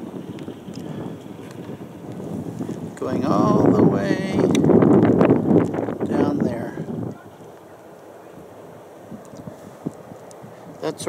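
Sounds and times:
wind buffeting microphone: 0.0s - 11.0s
voices: 3.0s - 4.7s, 6.0s - 9.5s, 10.8s - 11.0s.

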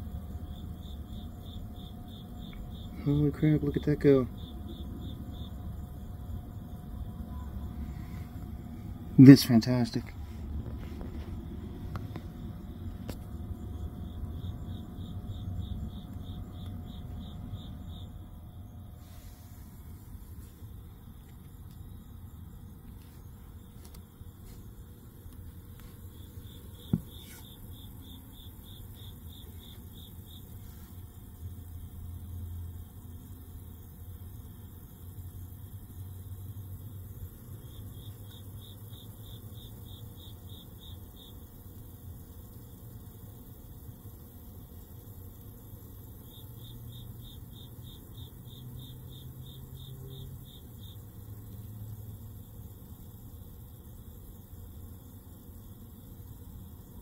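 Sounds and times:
faint hiss: 0.0s - 32.8s
low steady hum: 0.0s - 47.2s.

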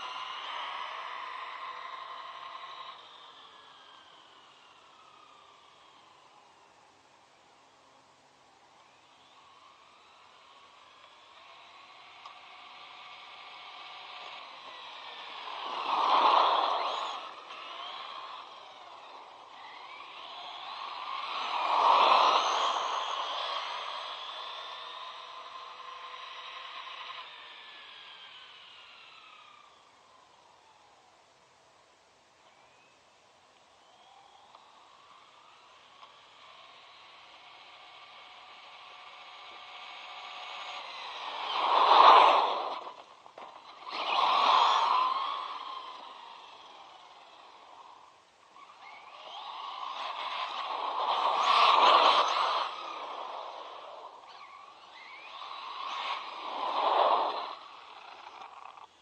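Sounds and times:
toy truck motor whining: 0.0s - 6.7s, 8.5s - 31.1s, 33.6s - 59.0s.

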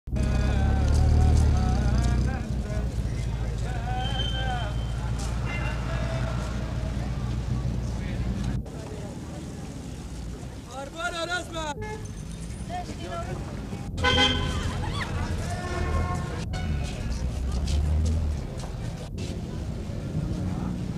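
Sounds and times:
vehicle engine rumble: 0.1s - 20.9s
people talking: 0.2s - 20.9s.

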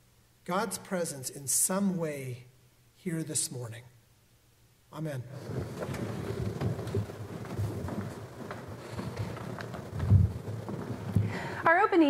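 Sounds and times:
crowd rustling and murmuring: 5.3s - 12.0s.

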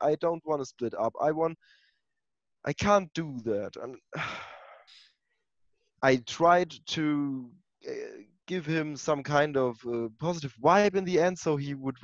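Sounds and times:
person sighing: 4.1s - 5.0s.

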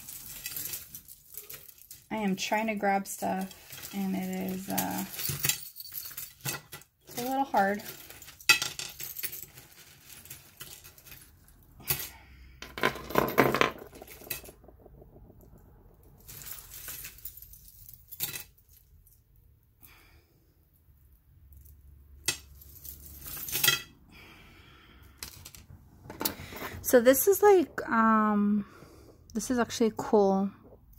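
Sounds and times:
jewelry clinking and rattling: 0.0s - 19.5s, 21.0s - 24.0s, 25.2s - 28.3s
jewelry set down on wooden table: 12.6s - 14.6s.

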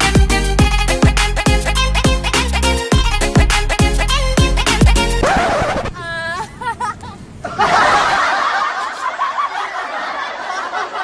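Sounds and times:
people laughing: 5.2s - 11.0s.

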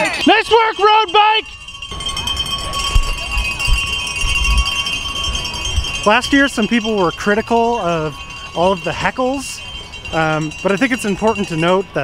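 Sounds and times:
cowbells ringing: 0.0s - 12.0s.

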